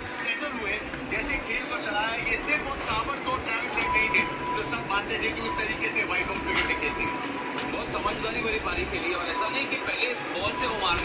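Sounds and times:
television cricket broadcast: 0.0 - 11.0.

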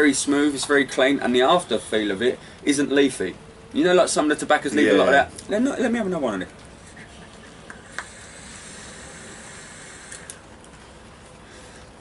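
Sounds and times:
hiss of air and vapour: 7.7 - 12.0
e-cigarette click: 10.0 - 10.4.

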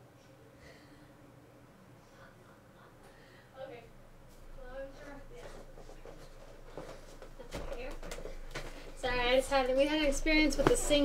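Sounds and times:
woman's voice: 3.6 - 4.0, 4.6 - 6.3, 7.5 - 8.2, 9.0 - 11.0.

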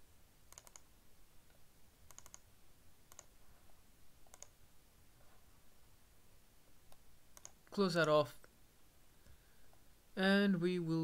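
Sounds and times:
computer mouse clicks: 0.5 - 0.9, 1.5 - 2.5, 3.1 - 3.4, 4.2 - 4.6, 6.9 - 8.2.

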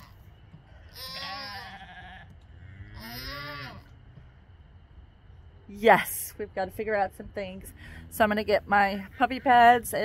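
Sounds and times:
goats bleating: 0.0 - 3.9.

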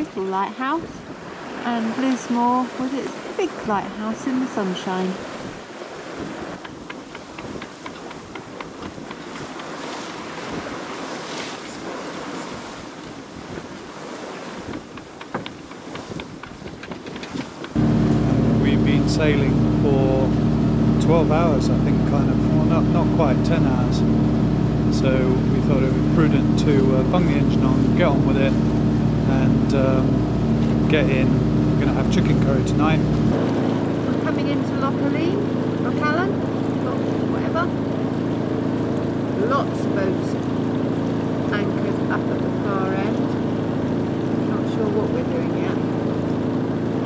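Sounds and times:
boat engine running: 0.0 - 47.0
water rushing along boat hull: 0.0 - 47.0
wind on microphone: 5.0 - 37.0.

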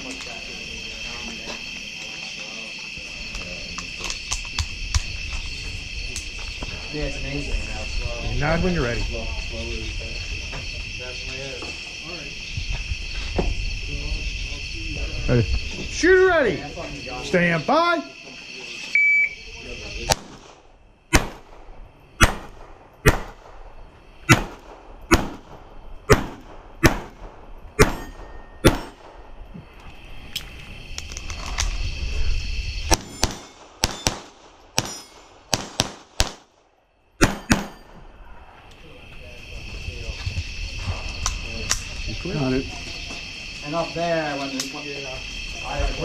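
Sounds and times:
crickets chirping: 0.0 - 46.0
rimfire gunshots: 20.1 - 29.3, 32.9 - 36.6, 37.2 - 37.9.

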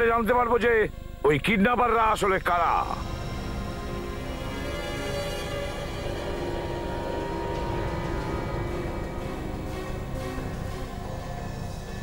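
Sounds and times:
dark sustained tones: 0.9 - 12.0.

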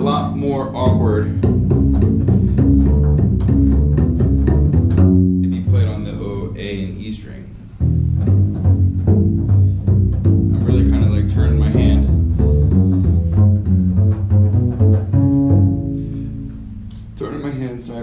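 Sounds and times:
plucked double bass notes: 0.0 - 18.0.

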